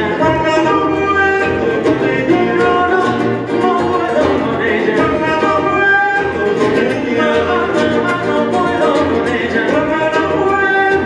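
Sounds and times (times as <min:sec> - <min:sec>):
acoustic bass guitar: 0:00.0 - 0:11.0
men singing in harmony: 0:00.0 - 0:11.0
plucked acoustic guitars: 0:00.0 - 0:11.0.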